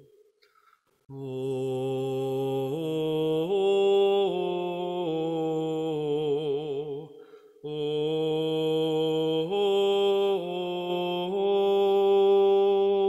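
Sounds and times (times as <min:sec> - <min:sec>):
meditative chant singing: 0:01.1 - 0:13.0.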